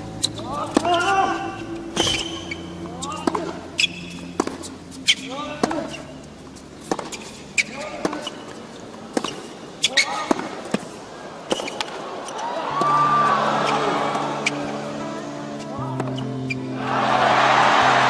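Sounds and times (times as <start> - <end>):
shoes squeaking on court: 0.0 - 16.7
racket striking tennis ball: 0.3 - 6.1, 6.8 - 10.9.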